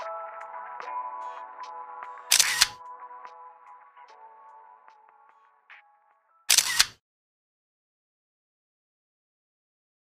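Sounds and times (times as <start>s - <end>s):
camera shutter click: 2.3s - 2.8s, 6.5s - 7.0s.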